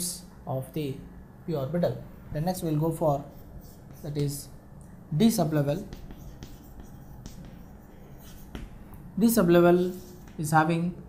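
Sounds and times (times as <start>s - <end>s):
chalk scraping on chalkboard: 3.0s - 4.6s, 5.3s - 10.6s
chalk taps on chalkboard: 3.2s - 4.5s, 5.4s - 9.0s, 9.9s - 10.5s.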